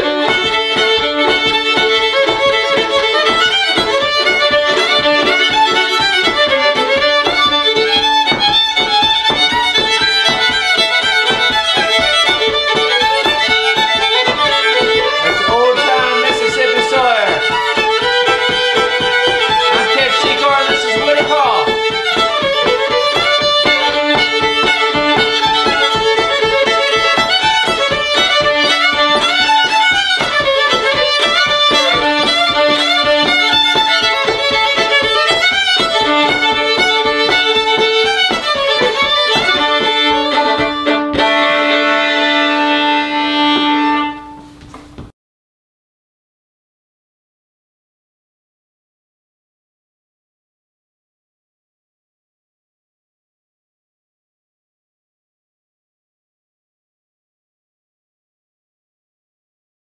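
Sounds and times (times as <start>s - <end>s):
two fiddles playing a tune: 0.0s - 45.0s.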